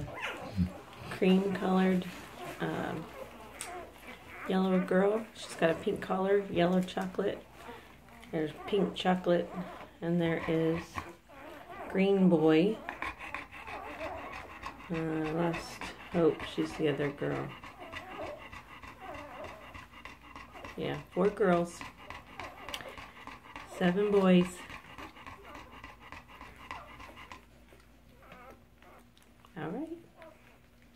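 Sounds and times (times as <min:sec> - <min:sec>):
dog panting: 0:00.0 - 0:30.9.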